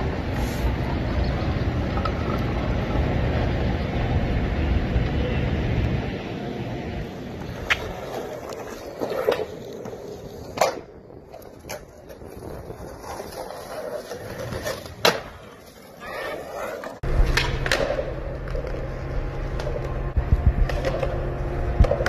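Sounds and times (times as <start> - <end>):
skateboard wheels rolling on concrete: 0.0 - 22.0
skateboard deck clacking on ground: 7.4 - 20.0.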